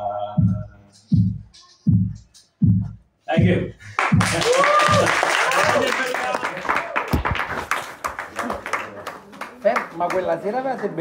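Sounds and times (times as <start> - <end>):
small audience clapping: 3.9 - 11.0.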